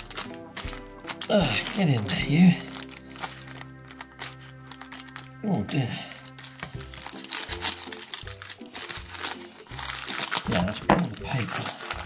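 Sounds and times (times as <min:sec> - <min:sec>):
background music: 0:00.0 - 0:12.0
hands squishing dough: 0:00.0 - 0:12.0
paper crinkling and rustling: 0:00.0 - 0:12.0.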